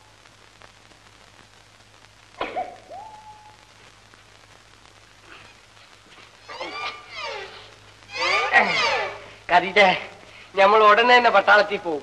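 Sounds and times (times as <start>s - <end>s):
meow-like cries: 6.4s - 9.3s.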